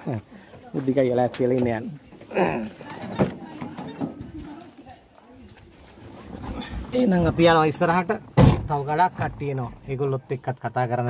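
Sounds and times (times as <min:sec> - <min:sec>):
vehicle cabin on dirt track: 0:00.0 - 0:11.0.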